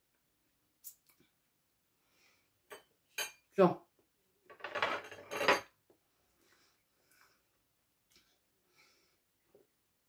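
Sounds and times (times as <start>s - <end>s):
cutlery clinking on glass dishes: 2.7s - 3.5s, 4.6s - 5.7s.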